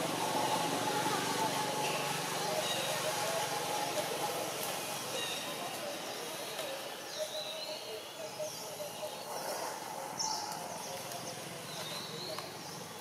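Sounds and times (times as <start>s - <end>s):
birds chirping: 0.0s - 13.0s
faint murmur of voices: 0.0s - 13.0s.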